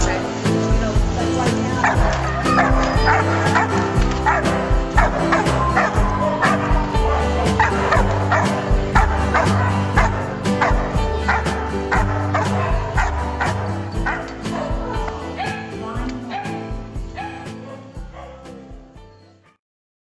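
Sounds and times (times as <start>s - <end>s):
background music with steady beat: 0.0s - 19.5s
dog barking: 1.8s - 15.7s, 16.3s - 18.4s.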